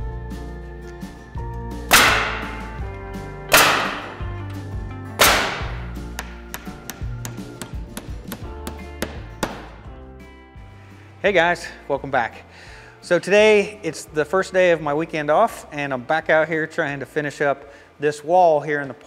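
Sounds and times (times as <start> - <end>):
country guitar music: 0.0 - 17.5.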